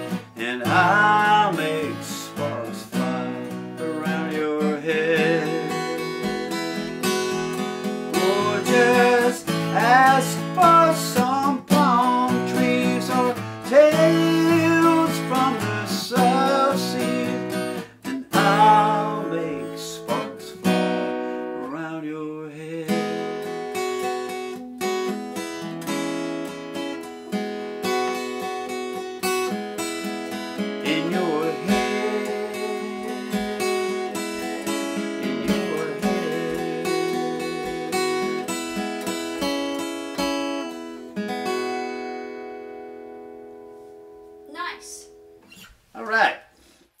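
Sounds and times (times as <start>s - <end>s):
person singing: 0.0s - 20.9s, 30.8s - 38.6s
acoustic guitar playing: 0.0s - 46.0s.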